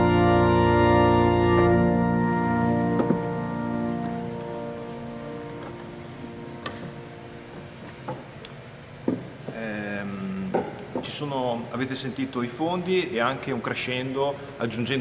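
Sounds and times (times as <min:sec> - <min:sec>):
pipe organ chord: 0:00.0 - 0:08.4
man's voice: 0:09.5 - 0:15.0.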